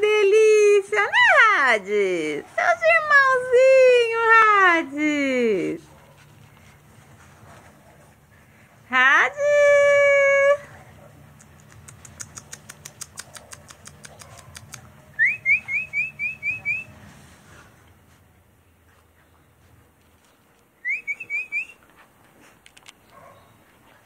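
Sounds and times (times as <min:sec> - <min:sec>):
faint rapid high ticks: 0:11.4 - 0:14.9.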